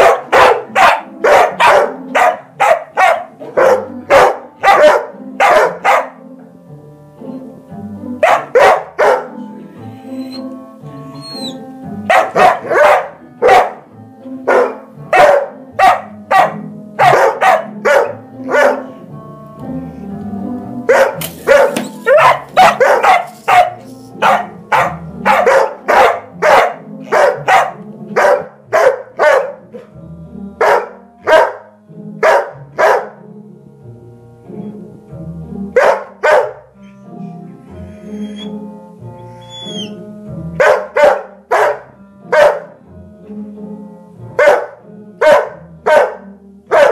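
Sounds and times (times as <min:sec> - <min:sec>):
dog barking loudly: 0:00.0 - 0:06.2, 0:08.2 - 0:09.4, 0:12.1 - 0:13.8, 0:14.5 - 0:18.9, 0:20.9 - 0:29.6, 0:30.6 - 0:33.2, 0:35.8 - 0:36.7, 0:40.6 - 0:42.8, 0:44.4 - 0:46.9.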